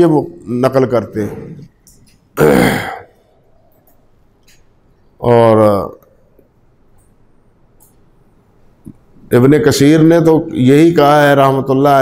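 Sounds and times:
man clearing his throat: 0:02.4 - 0:03.2.

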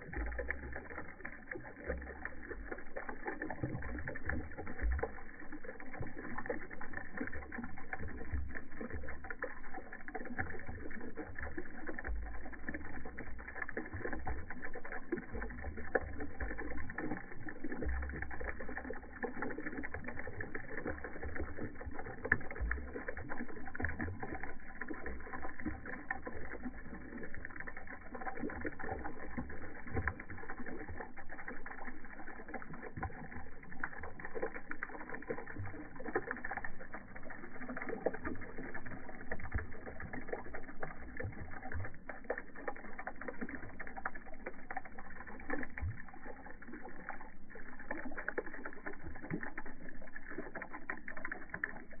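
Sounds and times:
bubbles popping: 0:00.0 - 0:52.0
liquid splashing into shallow water: 0:00.0 - 0:52.0.

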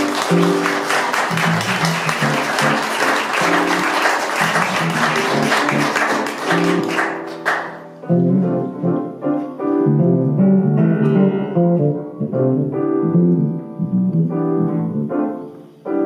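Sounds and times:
audience applauding: 0:00.0 - 0:08.0
band playing: 0:00.0 - 0:09.0
keyboard notes: 0:00.0 - 0:16.0
electric bass: 0:10.0 - 0:15.0.

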